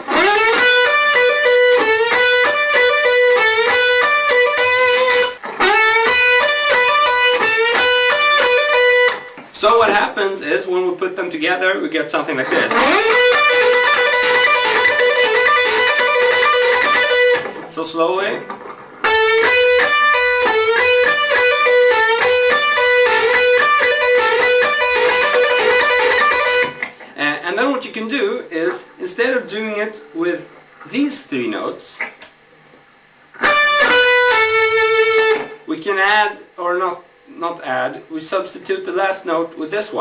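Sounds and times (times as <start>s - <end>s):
electric guitar fast lead lick: 0.0s - 10.2s, 12.3s - 27.8s, 33.3s - 35.7s.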